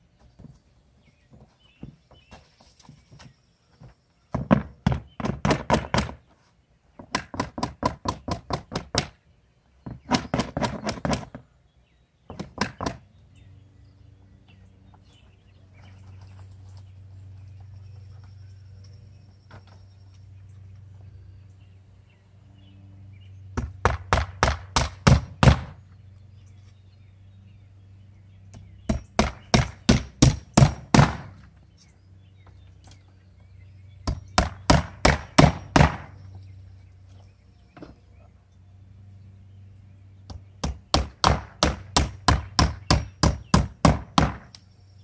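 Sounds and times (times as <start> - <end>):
hammer driving nails into wood: 40.6 - 44.5.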